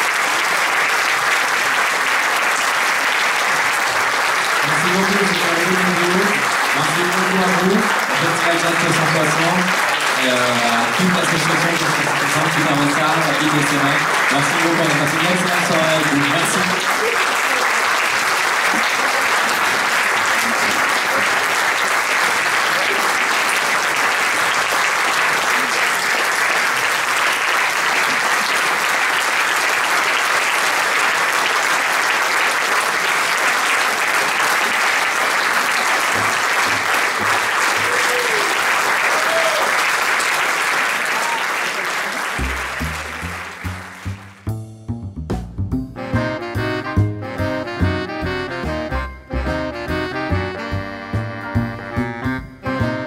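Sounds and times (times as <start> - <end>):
audience applauding: 0.0 - 44.4
music: 10.2 - 16.8, 42.4 - 53.0.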